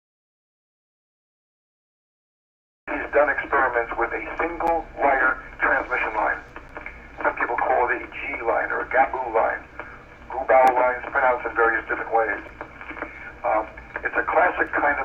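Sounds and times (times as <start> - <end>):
faint low hum: 2.9 - 15.0
person talking over telephone: 2.9 - 15.0.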